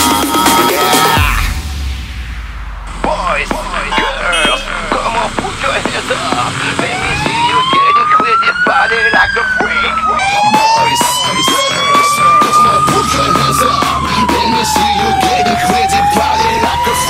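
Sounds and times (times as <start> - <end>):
fire engine sirens wailing: 3.5 - 17.0.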